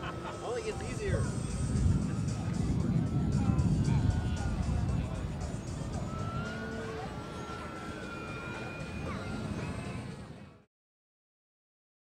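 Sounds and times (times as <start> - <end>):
public-address music: 0.0 - 10.6
model airplane engine drone: 0.0 - 10.7.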